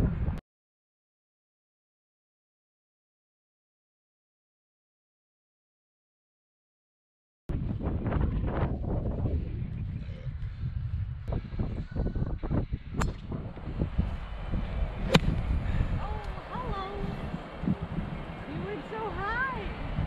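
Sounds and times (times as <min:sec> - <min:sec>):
wind buffeting microphone: 0:00.0 - 0:00.4, 0:07.5 - 0:20.0
golf club striking ball: 0:13.0 - 0:13.7, 0:14.8 - 0:16.4.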